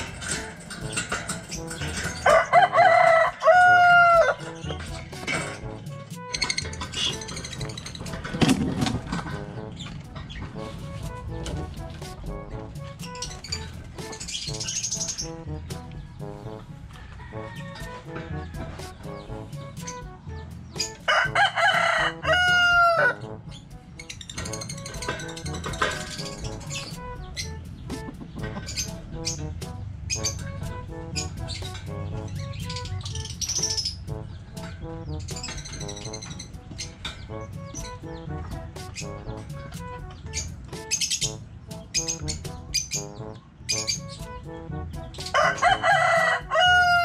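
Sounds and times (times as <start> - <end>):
quiet background music: 0.0 - 47.0
rooster crowing: 2.2 - 4.4, 16.9 - 18.9, 21.1 - 23.2, 45.3 - 47.0.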